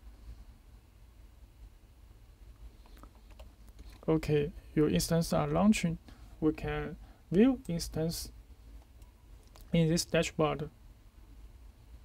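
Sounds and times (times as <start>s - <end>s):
low steady hum: 0.0s - 12.0s
computer keyboard clicks: 2.8s - 4.0s.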